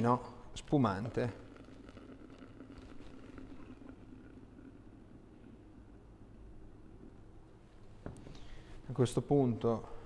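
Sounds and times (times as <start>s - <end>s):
sparkling wine pouring into glass: 0.8s - 4.8s.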